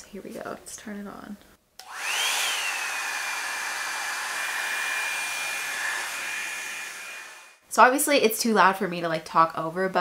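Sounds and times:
dryer brush motor whining: 0:01.8 - 0:07.6
fan rushing air: 0:01.8 - 0:07.6.

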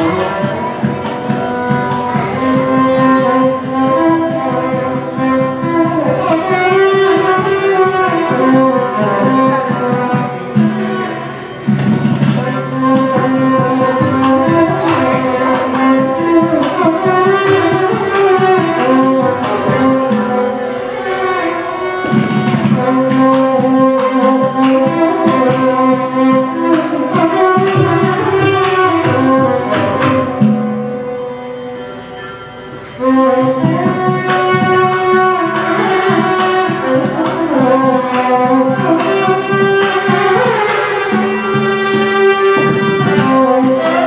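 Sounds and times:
hand-drum strokes: 0:00.0 - 0:44.0
violin melody: 0:00.0 - 0:44.0.

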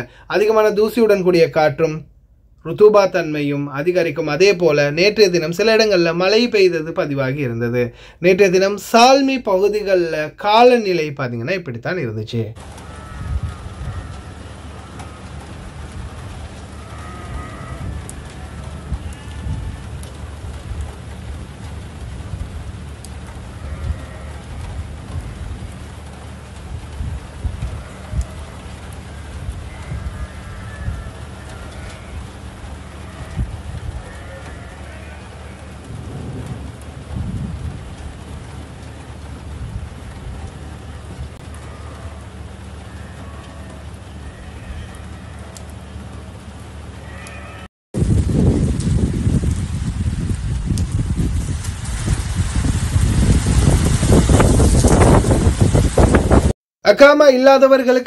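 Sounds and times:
faint high calls: 0:12.6 - 0:15.5, 0:41.4 - 0:46.1, 0:46.9 - 0:47.7
wind buffeting microphone: 0:12.8 - 0:28.5, 0:29.2 - 0:31.4, 0:32.1 - 0:34.1, 0:35.8 - 0:38.7, 0:39.3 - 0:41.4, 0:48.0 - 0:56.5.

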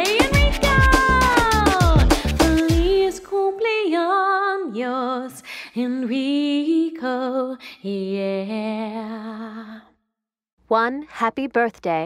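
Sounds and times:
upbeat music with drum beat: 0:00.0 - 0:03.1.

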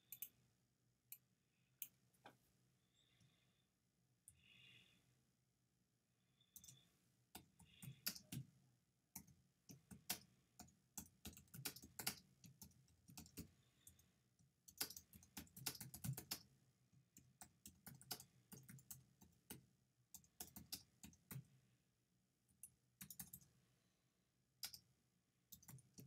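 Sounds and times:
computer keyboard typing: 0:00.0 - 0:00.4, 0:06.6 - 0:08.5, 0:09.2 - 0:14.0, 0:14.6 - 0:16.5, 0:17.2 - 0:21.5, 0:22.6 - 0:23.5, 0:25.5 - 0:26.0.

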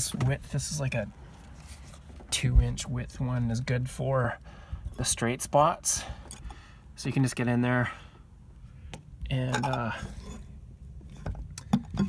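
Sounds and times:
low rumbling handling noise: 0:00.0 - 0:04.0.

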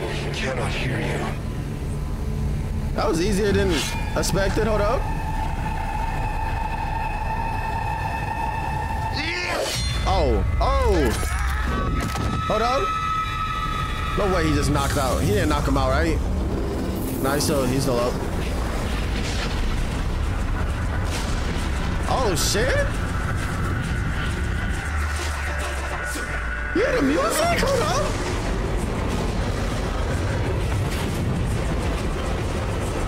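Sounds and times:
continuous low rumble: 0:00.0 - 0:33.0.

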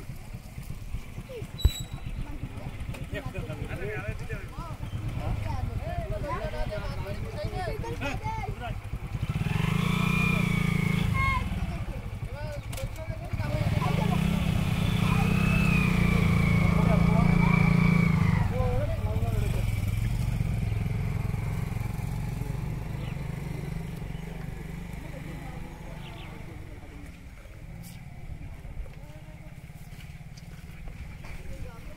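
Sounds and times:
motor engine running: 0:00.0 - 0:31.9.

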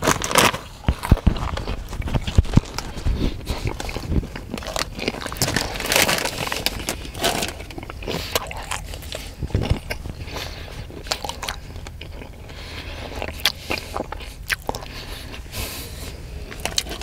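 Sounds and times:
person chewing crunchy food: 0:00.0 - 0:17.0.

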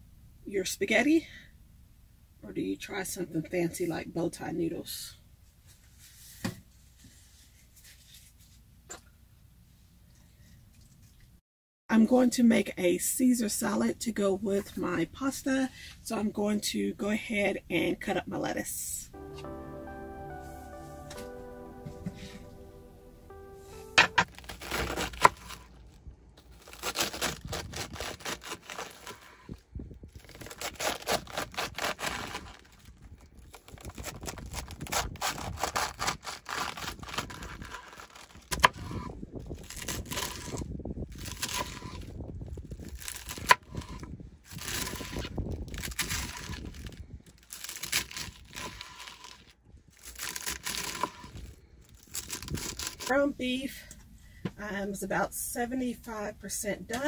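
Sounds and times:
background music: 0:19.1 - 0:25.2
knife chopping lettuce: 0:24.5 - 0:25.6, 0:26.6 - 0:29.4.

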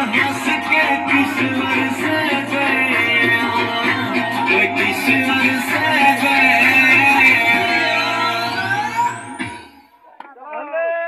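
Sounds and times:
high rising sweep: 0:00.0 - 0:09.7
dance music from loudspeaker: 0:00.0 - 0:11.0.

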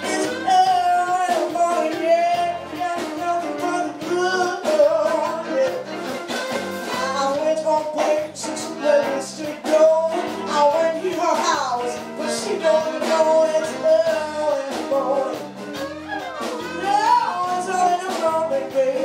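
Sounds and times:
woman singing into a microphone: 0:00.0 - 0:06.0, 0:06.9 - 0:19.0
electric guitar: 0:00.0 - 0:19.0.

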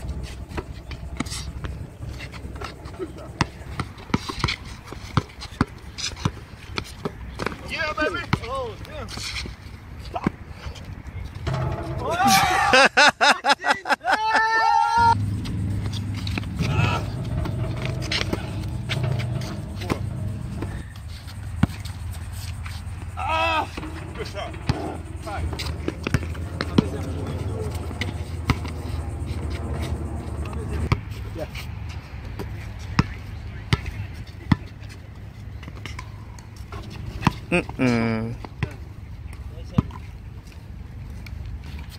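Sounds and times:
steady low rumble: 0:00.0 - 0:05.1, 0:15.0 - 0:31.2
basketball bouncing: 0:00.1 - 0:07.6, 0:11.5 - 0:12.1, 0:15.2 - 0:22.0, 0:23.7 - 0:29.7
players shouting: 0:11.5 - 0:15.2, 0:16.2 - 0:21.0, 0:23.1 - 0:28.9.

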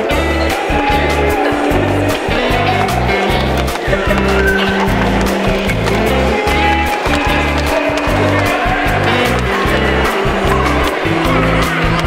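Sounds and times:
music with heavy bass and quick beat: 0:00.0 - 0:12.0.

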